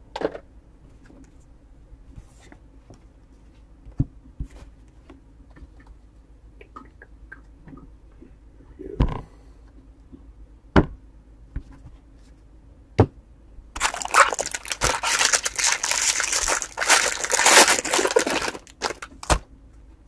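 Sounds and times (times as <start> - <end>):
foil wrapper tearing and crinkling: 13.8 - 19.4.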